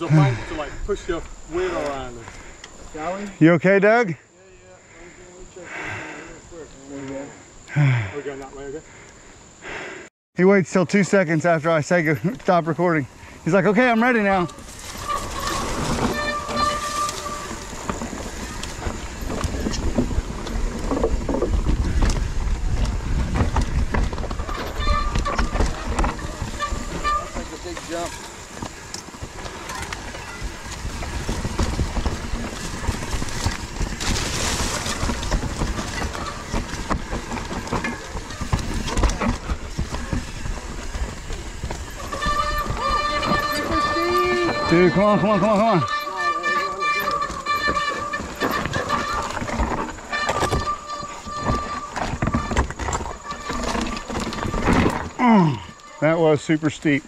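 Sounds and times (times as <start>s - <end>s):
bike tyre rumble on dirt: 0.0s - 10.0s, 10.6s - 57.0s
bike rattling knocks: 13.4s - 55.8s
wind buffeting microphone: 14.4s - 44.9s.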